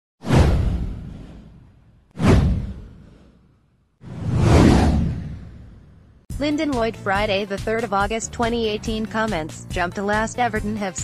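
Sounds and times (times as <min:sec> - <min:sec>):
whoosh with deep low rumble: 0:00.2 - 0:06.3.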